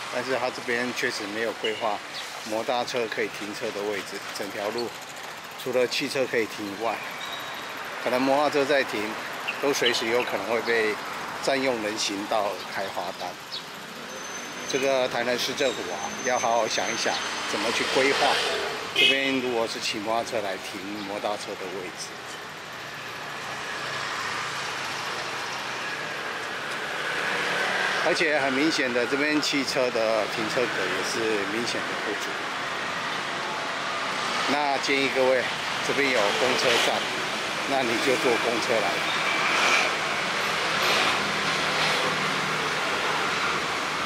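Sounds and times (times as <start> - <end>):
road traffic passing: 0.0 - 44.0.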